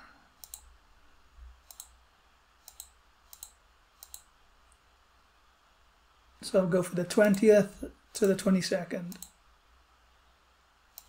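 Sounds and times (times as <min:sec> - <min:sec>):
computer mouse clicks: 0:00.4 - 0:00.7, 0:01.6 - 0:02.0, 0:02.6 - 0:04.8, 0:07.1 - 0:07.5, 0:08.2 - 0:08.5, 0:09.1 - 0:09.4.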